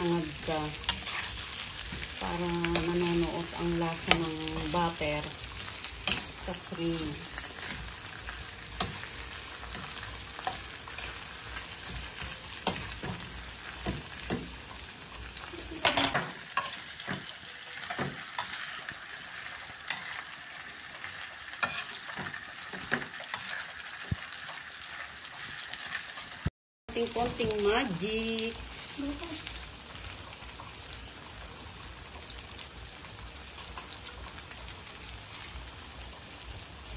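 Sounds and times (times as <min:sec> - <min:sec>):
shrimp sizzling in wok: 0:00.0 - 0:36.9
spatula scraping pan: 0:00.4 - 0:14.6, 0:15.9 - 0:26.3.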